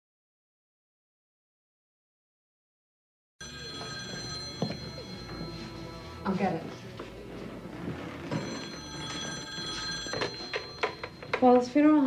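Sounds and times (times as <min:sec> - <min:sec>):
telephone ringing: 0:03.4 - 0:12.0.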